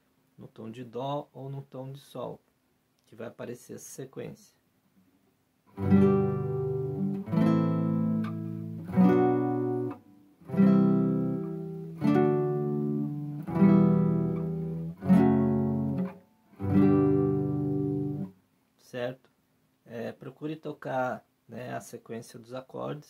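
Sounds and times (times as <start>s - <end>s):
guitar chords strummed: 5.7s - 18.3s.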